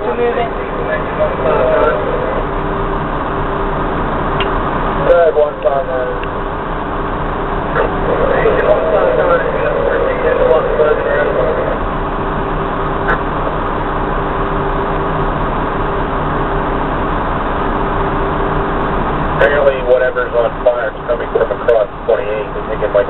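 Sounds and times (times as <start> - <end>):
muffled voices: 0.0 - 6.6, 7.3 - 12.1, 19.4 - 23.0
truck engine humming: 0.0 - 23.0.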